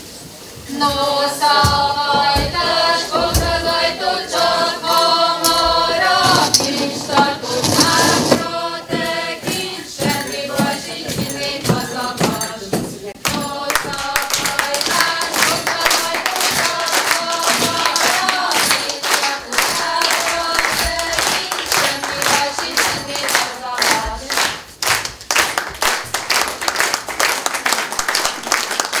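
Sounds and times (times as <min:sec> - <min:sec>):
group singing folk song: 0:00.6 - 0:26.7
audience clapping in rhythm: 0:00.7 - 0:29.0
applause: 0:13.2 - 0:29.0.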